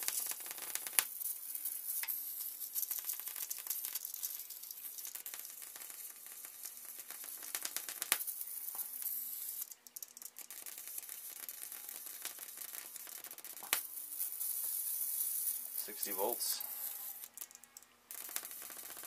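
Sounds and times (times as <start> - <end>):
electric arc crackling: 0.0 - 19.0
sharp electric snaps: 0.0 - 19.0.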